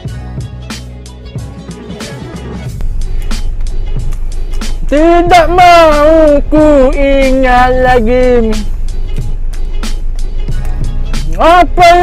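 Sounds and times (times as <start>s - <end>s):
background song: 0.0s - 12.0s.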